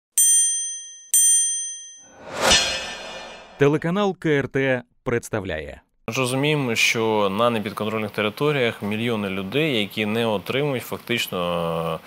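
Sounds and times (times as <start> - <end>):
bright bell-like dings: 0.2 - 2.2.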